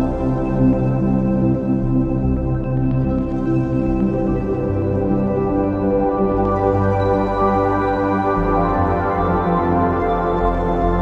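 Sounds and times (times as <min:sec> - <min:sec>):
slow ambient new-age music: 0:00.0 - 0:11.0.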